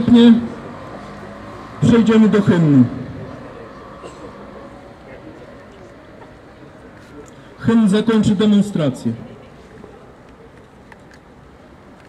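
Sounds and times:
man speaking into microphone: 0.0s - 0.8s, 1.8s - 4.2s, 7.0s - 9.3s
outdoor background noise: 0.0s - 12.0s.

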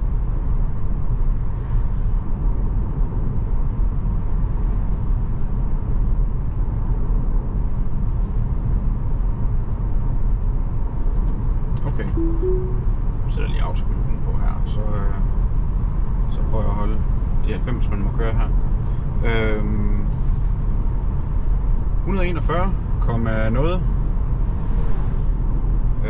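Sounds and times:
rising two-note chime: 12.0s - 13.0s.

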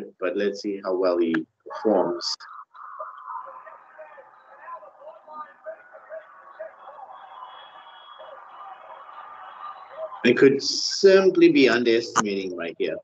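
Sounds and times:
faint voices from a speaker: 1.7s - 7.5s.

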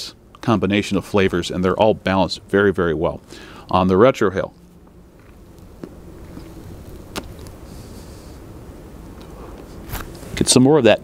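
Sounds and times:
distant traffic rumble: 0.0s - 10.9s
man blowing out smoke: 7.5s - 8.5s.

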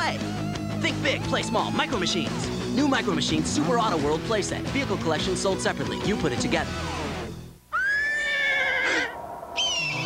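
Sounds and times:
animal cries: 7.7s - 10.0s.

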